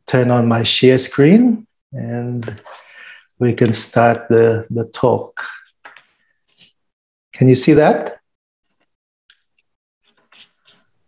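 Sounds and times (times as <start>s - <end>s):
man speaking: 0.1s - 2.7s, 3.4s - 5.7s, 7.4s - 8.2s.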